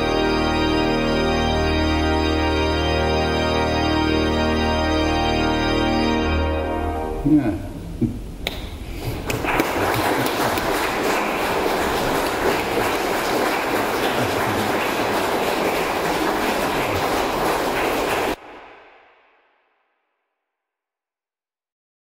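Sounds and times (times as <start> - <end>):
audience applauding in a church: 9.0 - 18.4.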